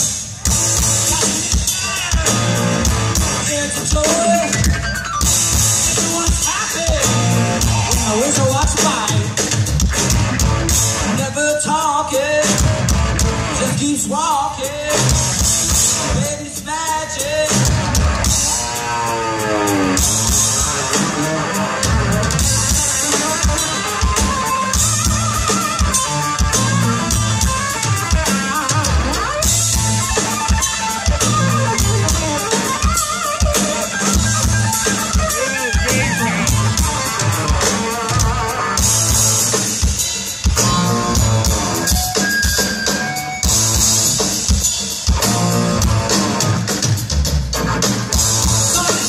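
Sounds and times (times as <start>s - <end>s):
bass guitar: 0.0s - 49.0s
drum kit: 0.0s - 49.0s
electric guitar: 0.0s - 49.0s.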